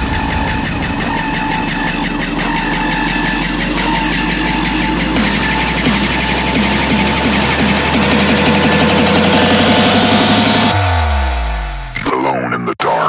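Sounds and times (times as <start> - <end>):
hard dance electronic music: 0.0 - 13.0.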